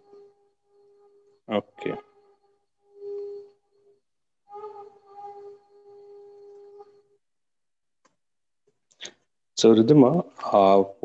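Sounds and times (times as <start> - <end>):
flute-like held tone: 0.0 - 7.3.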